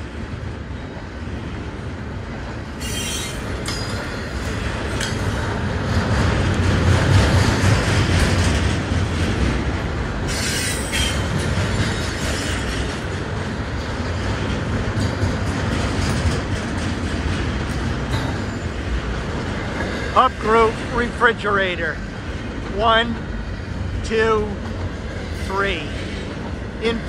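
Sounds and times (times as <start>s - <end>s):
freight train wheels rumbling: 0.0s - 27.0s
wheel squeal: 2.8s - 3.9s.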